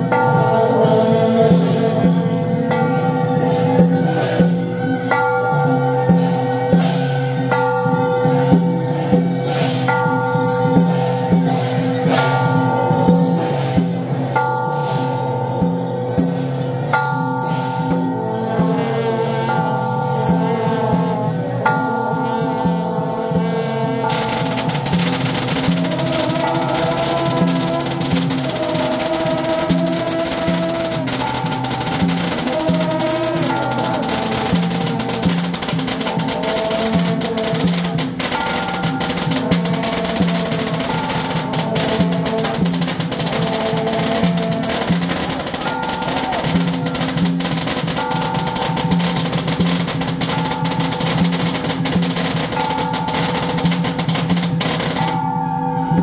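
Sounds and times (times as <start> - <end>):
busy drums and percussion: 0.0 - 56.0
wavering melody line: 7.3 - 56.0.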